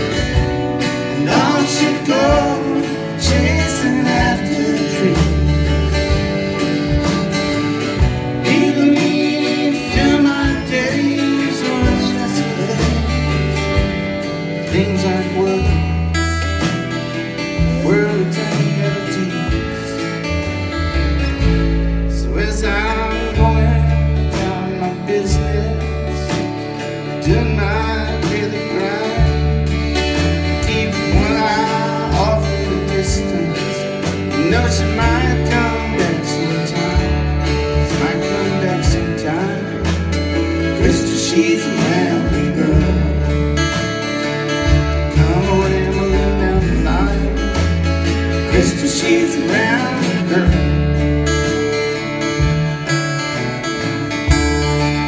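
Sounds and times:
country folk band playing: 0.0 - 55.0
pulsing bass line: 0.0 - 55.0.

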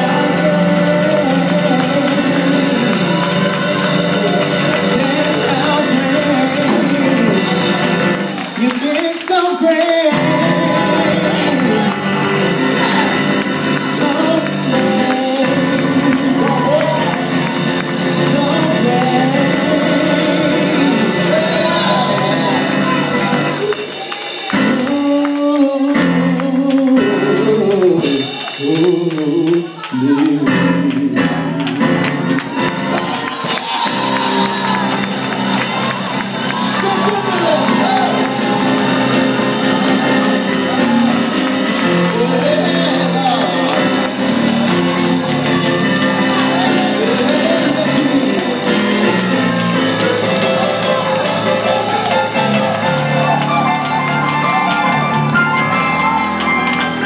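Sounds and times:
voices shouting and singing: 0.0 - 30.7, 32.4 - 55.3
gospel music chords: 0.0 - 57.0.

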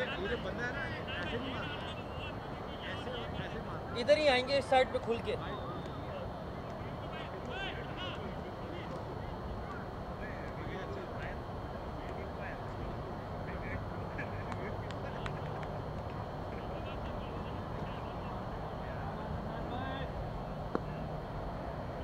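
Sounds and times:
distant voices: 0.0 - 22.0
steady low hum: 0.0 - 22.0.

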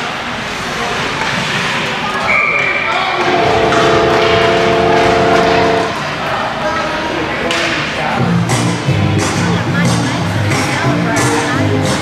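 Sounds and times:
crowd noise: 0.0 - 12.0
goal horn: 3.2 - 6.1.

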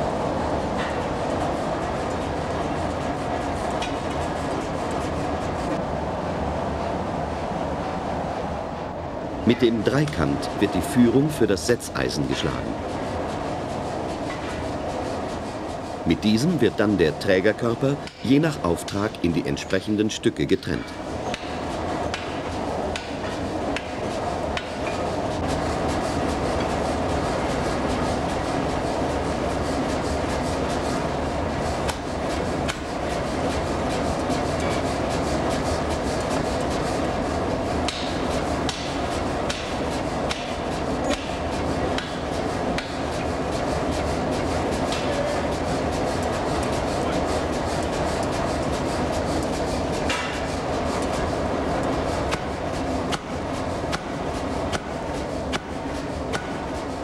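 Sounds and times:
forging hammer pounding: 37.9 - 41.4.

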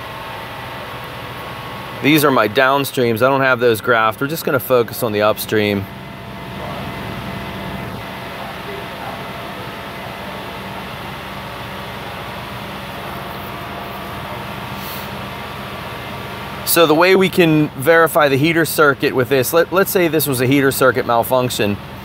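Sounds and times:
car engine running steadily: 0.0 - 22.0.

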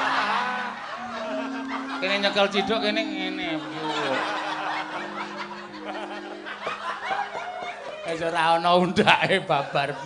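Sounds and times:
low steady held tones: 0.0 - 7.9
audience laughing: 0.0 - 10.0.

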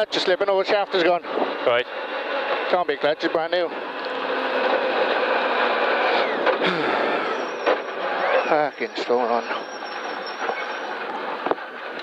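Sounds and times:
rally car engine: 0.0 - 12.0
road noise: 0.0 - 12.0.

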